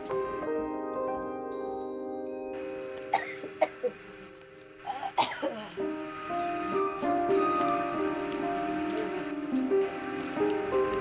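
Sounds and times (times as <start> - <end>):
background music: 0.0 - 11.0
person coughing: 3.1 - 4.0, 4.9 - 5.8.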